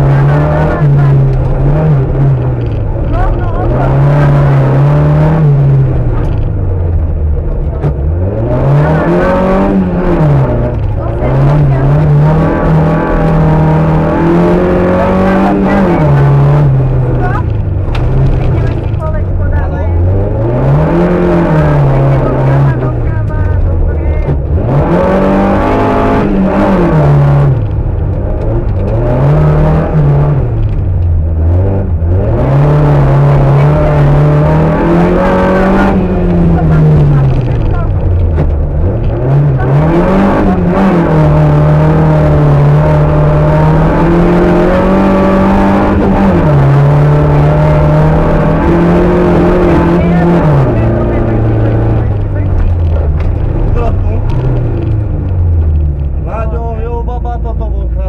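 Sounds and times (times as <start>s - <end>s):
rally car engine revving: 0.0s - 58.0s.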